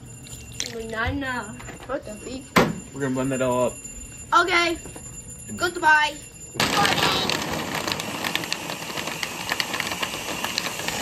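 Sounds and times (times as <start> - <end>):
blender running: 6.6 - 11.0.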